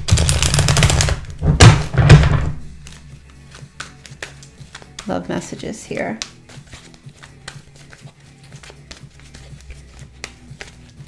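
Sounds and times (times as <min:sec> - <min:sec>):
loud knocks: 0:01.4 - 0:02.6
cards shuffling: 0:02.6 - 0:05.1, 0:06.1 - 0:11.0.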